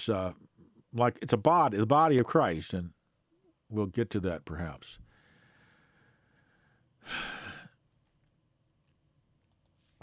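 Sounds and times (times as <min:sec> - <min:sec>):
man sighing: 0:07.0 - 0:07.8.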